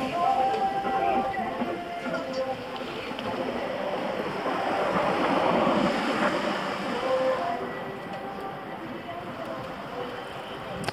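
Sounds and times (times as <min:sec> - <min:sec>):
road noise: 0:00.0 - 0:10.9
rushing wind: 0:00.0 - 0:10.9.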